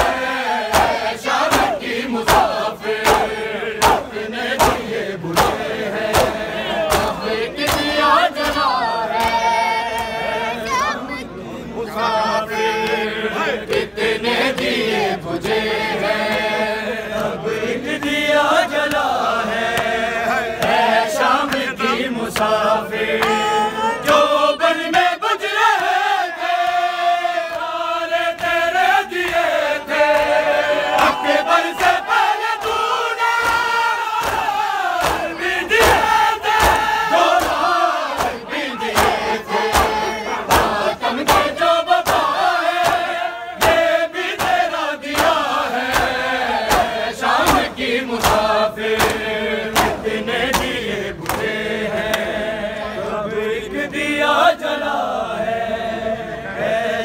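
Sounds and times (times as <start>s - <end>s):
hands slapping chests: 0.0s - 9.4s, 29.2s - 52.3s
crowd chanting along: 0.0s - 57.0s
men chanting a lament: 0.0s - 57.0s.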